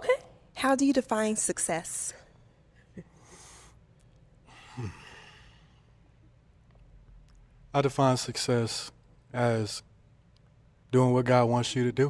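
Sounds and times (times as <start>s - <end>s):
person sighing: 4.5s - 5.6s.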